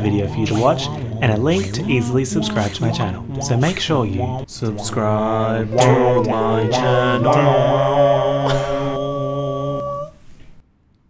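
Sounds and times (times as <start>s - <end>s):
man singing sustained chord: 0.0s - 10.1s.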